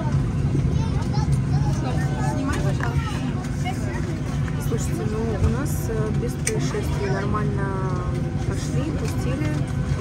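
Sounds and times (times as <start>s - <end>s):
airliner cabin hum: 0.0s - 10.0s
faint passenger voices: 0.0s - 10.0s.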